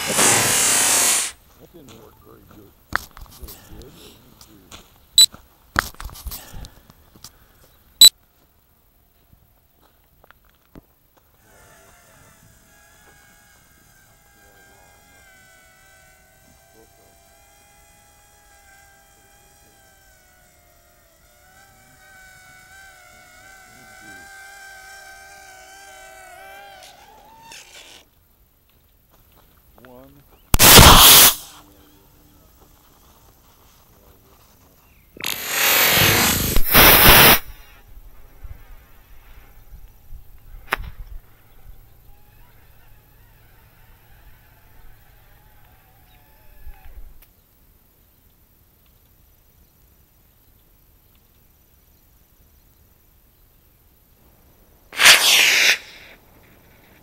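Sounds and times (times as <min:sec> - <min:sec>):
loud burst of noise: 0:00.0 - 0:01.4, 0:30.5 - 0:31.6, 0:35.2 - 0:37.7, 0:55.0 - 0:56.2
model rocket motor rushing: 0:00.0 - 0:01.4, 0:11.4 - 0:28.1, 0:30.5 - 0:32.0, 0:35.2 - 0:47.2, 0:55.0 - 0:57.0
quadcopter motors whining: 0:00.0 - 0:01.4, 0:11.3 - 0:28.1, 0:30.4 - 0:33.4, 0:35.2 - 0:47.2, 0:55.0 - 0:57.0.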